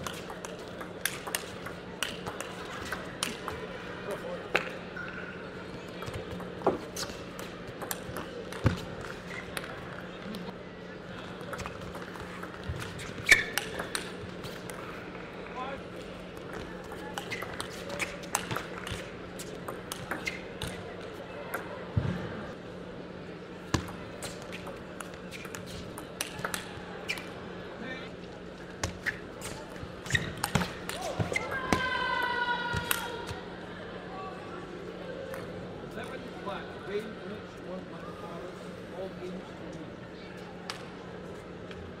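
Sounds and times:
murmur of voices: 0.0 - 42.0.

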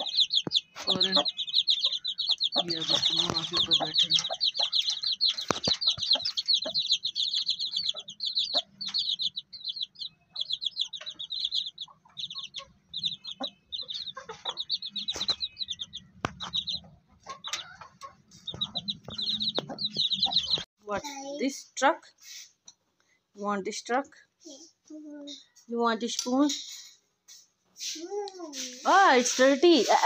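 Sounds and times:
chicks peeping: 0.0 - 20.7
scattered knocks: 16.1 - 20.7.

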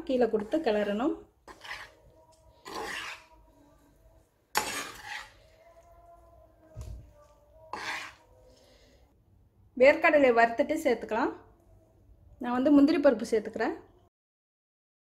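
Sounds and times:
metal spoon scraping a pan: 0.0 - 3.8, 4.5 - 6.0, 7.6 - 8.9.

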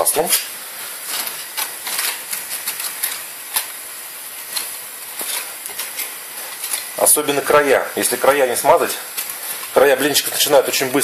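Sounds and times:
crepes frying crackling: 0.0 - 11.0
foil wrapper crinkling: 0.8 - 11.0.

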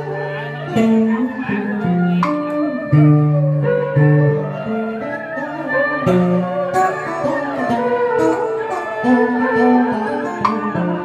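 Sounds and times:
electric guitar melody: 0.0 - 11.0.

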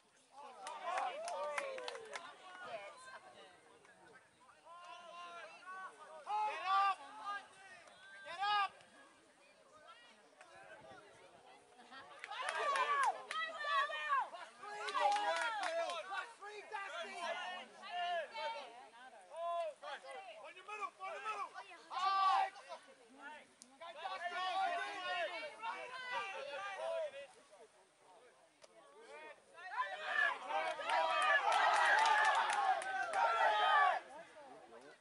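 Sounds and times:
crowd and players calling out: 0.0 - 35.0.

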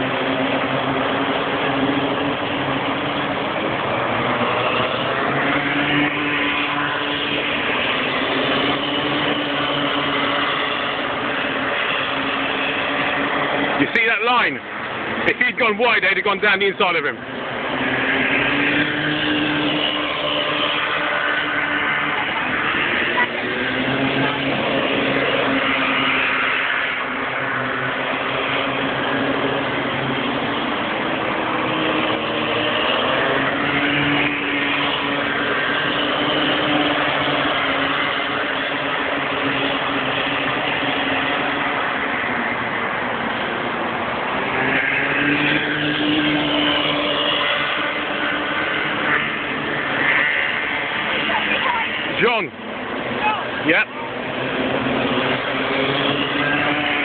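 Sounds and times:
go-kart engines racing: 0.0 - 57.0.

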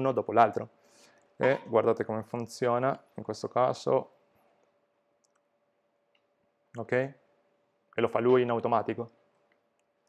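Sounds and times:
faint steady hum: 0.0 - 10.0
faint mouse clicks: 4.4 - 5.5.

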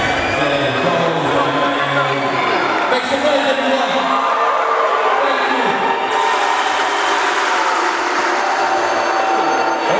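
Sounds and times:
crowd cheering and shouting: 0.0 - 9.9.

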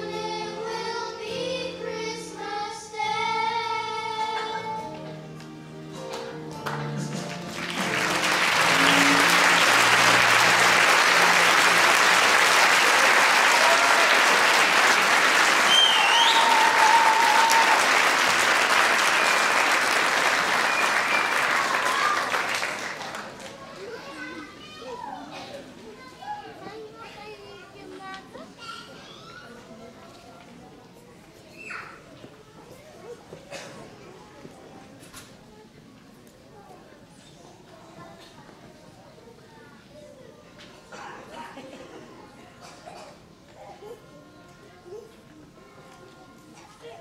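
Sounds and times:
audience applauding: 6.6 - 23.9
chatter of voices: 21.7 - 47.0.

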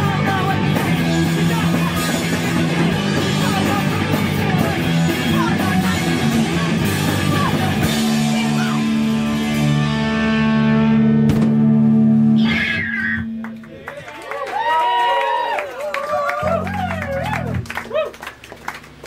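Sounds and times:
live rock band: 0.0 - 14.2.

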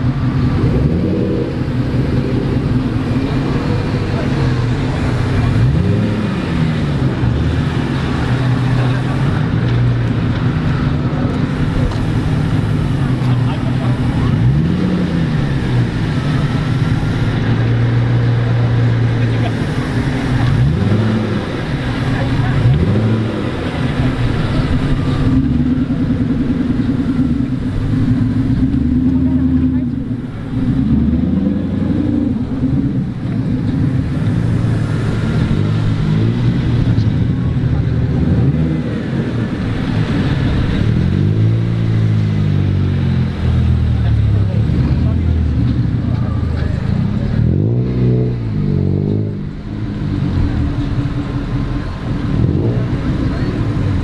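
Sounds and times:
car engine revving: 0.0 - 54.0
car engines running: 0.0 - 54.0.

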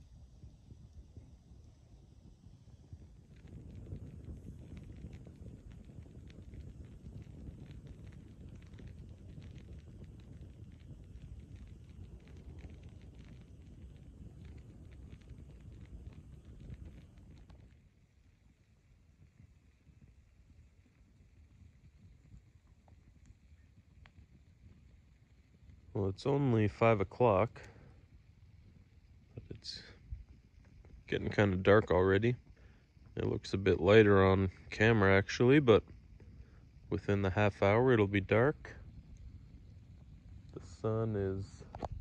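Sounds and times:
campfire crackling and popping: 0.0 - 42.0
low rumble: 24.4 - 42.0.

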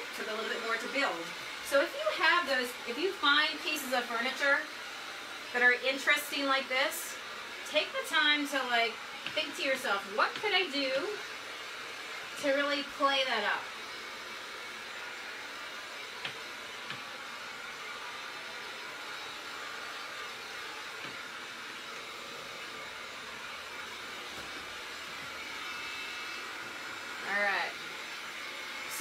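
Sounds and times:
heat gun fan blowing hiss: 0.0 - 29.0.

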